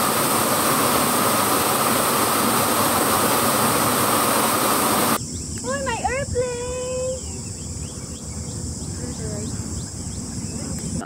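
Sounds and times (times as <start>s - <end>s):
insects droning: 0.0s - 11.0s
wind rumble on microphone: 0.0s - 11.0s.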